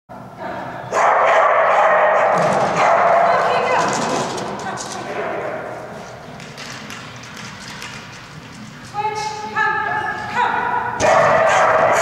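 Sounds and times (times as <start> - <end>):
dogs barking in echoing hall: 0.7 - 6.5, 10.5 - 12.0.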